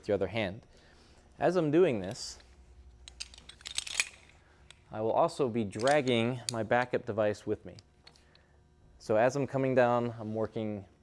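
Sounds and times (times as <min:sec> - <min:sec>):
metal hardware clicking and clinking: 0:03.0 - 0:04.8, 0:05.7 - 0:06.9.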